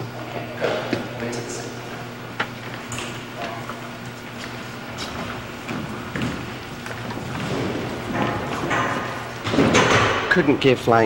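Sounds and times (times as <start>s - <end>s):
steady low hum: 0.0s - 11.0s
dancers' feet thudding on floor: 4.3s - 10.4s.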